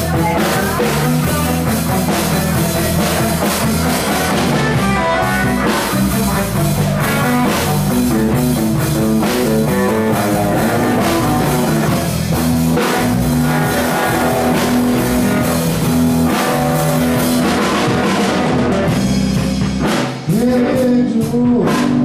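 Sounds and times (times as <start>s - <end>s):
live rock band playing: 0.0s - 22.0s.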